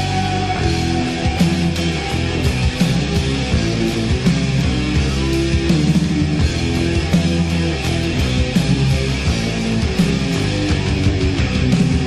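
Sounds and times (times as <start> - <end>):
electric guitar riffing: 0.0 - 12.0
heavy metal instrumental: 0.0 - 12.0.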